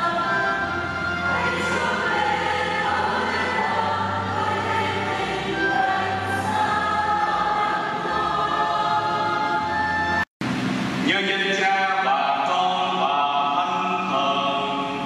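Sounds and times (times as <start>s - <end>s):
choir singing a hymn: 0.0s - 10.2s, 11.9s - 15.0s.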